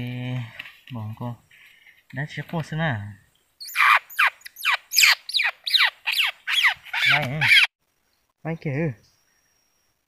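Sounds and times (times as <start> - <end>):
bird squawking: 3.6 - 7.7.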